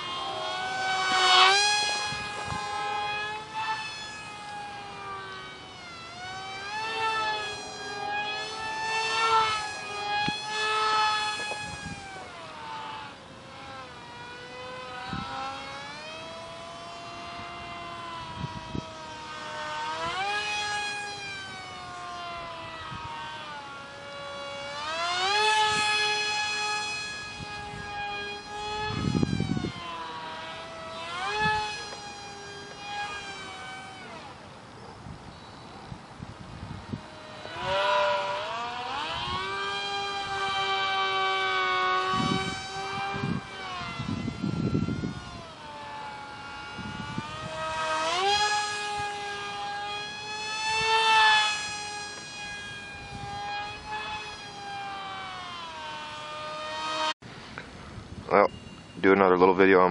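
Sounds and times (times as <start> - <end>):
electric motor whining: 0.0 - 57.2.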